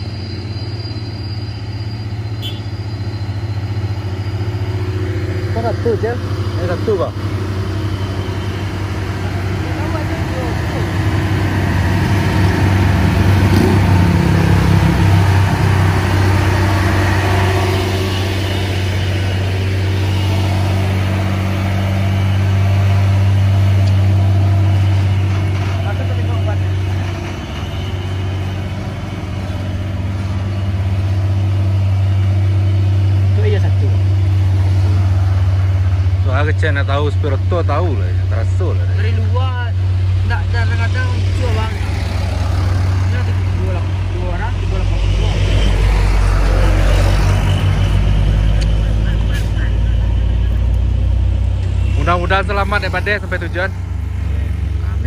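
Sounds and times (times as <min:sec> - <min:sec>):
diesel truck engine passing: 0:00.0 - 0:55.0.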